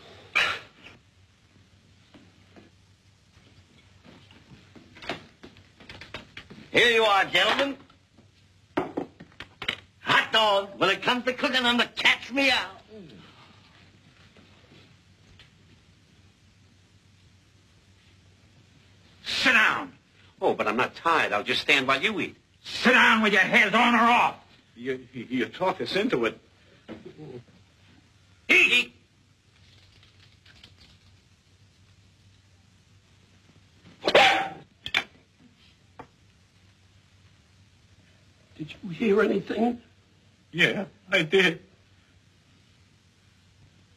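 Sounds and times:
dishes knocking and clicking: 8.8 - 9.9.

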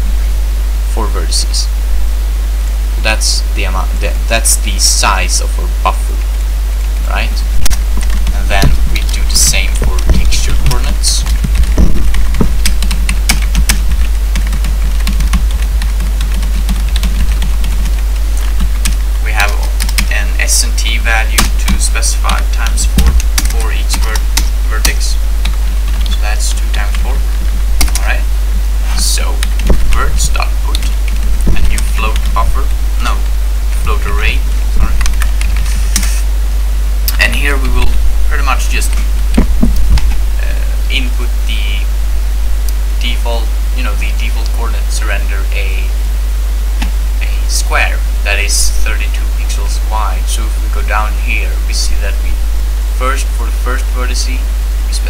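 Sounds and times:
steady low hum: 0.0 - 55.0
computer keyboard typing: 12.6 - 19.0, 19.7 - 20.2, 21.4 - 26.2.

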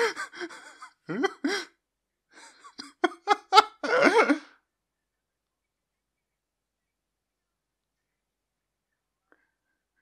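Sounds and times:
man laughing: 0.0 - 1.7, 2.4 - 4.5.

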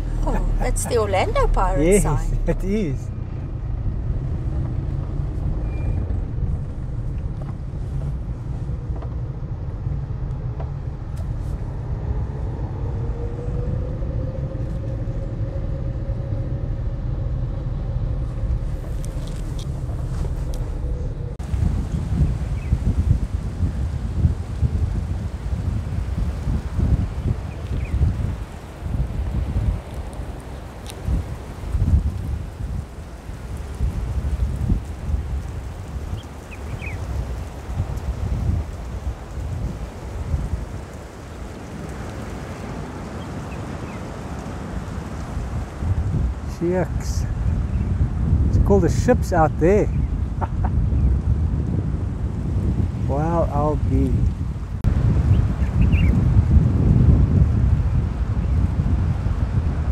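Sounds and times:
car engine and road rumble: 0.0 - 59.9
wind buffeting microphone: 0.0 - 59.9.

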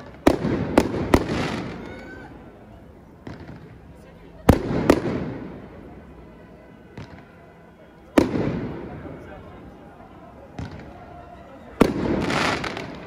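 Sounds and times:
firework bangs with echo: 0.0 - 1.9, 3.2 - 3.8, 4.4 - 5.6, 8.1 - 9.0, 10.5 - 11.0, 11.8 - 13.0.

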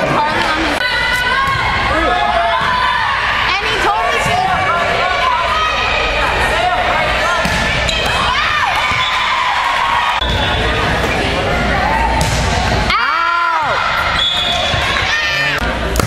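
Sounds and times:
people shouting and talking: 0.0 - 16.0
sneakers squeaking on wooden floor: 7.8 - 9.3.

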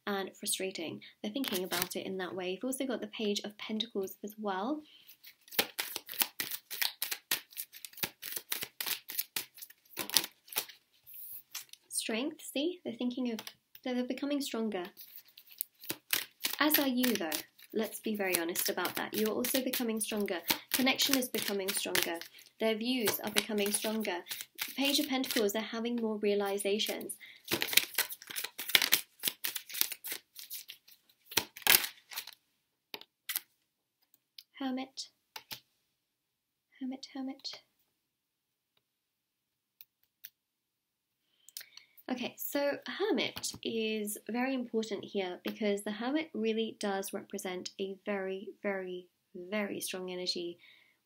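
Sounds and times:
cards being shuffled: 1.4 - 1.9, 5.1 - 11.8, 14.9 - 25.5, 26.5 - 33.5, 35.4 - 35.6.

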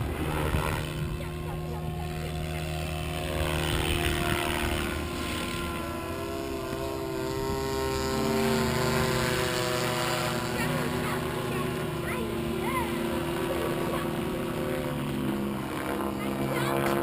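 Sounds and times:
model helicopter whine: 0.0 - 17.0.

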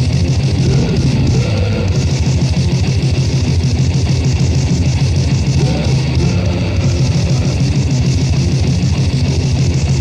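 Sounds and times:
fast dense drumming: 0.0 - 10.0
heavily distorted guitars: 0.0 - 10.0.

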